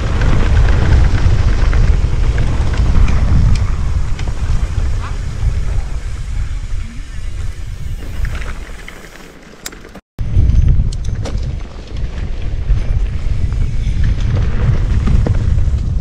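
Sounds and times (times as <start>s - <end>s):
wind buffeting microphone: 0.0s - 8.9s, 10.2s - 16.0s
bike tyre rumble and clatter: 0.0s - 16.0s.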